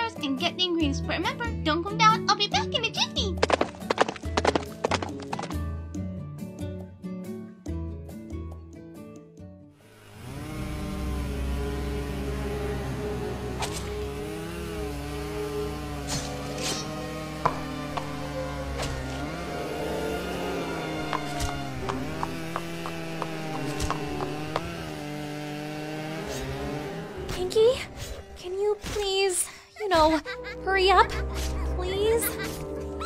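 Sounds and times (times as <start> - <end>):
droning background music: 0.0 - 33.0
pony hooves clip-clopping: 3.4 - 5.6.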